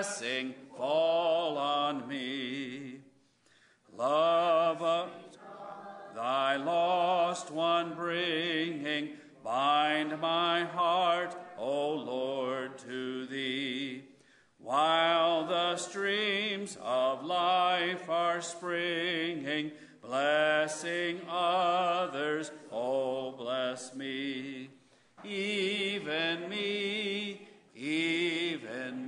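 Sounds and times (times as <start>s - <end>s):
man singing a hymn solo: 0.0s - 3.2s, 3.9s - 5.4s, 6.1s - 29.0s.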